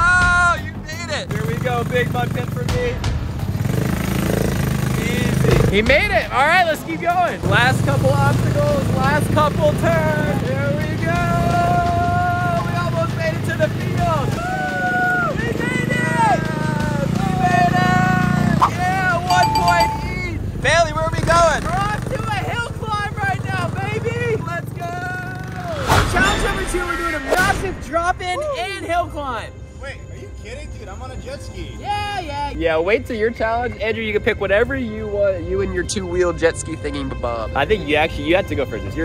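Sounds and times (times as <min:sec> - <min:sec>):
background music: 0:00.0 - 0:20.6, 0:28.2 - 0:39.0.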